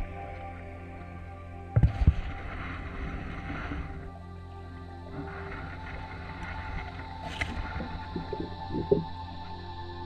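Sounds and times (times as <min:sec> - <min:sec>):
water rushing and sloshing: 0:01.6 - 0:09.8.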